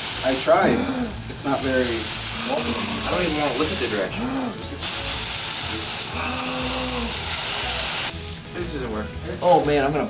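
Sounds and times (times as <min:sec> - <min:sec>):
air hissing through straws: 0:00.0 - 0:08.1.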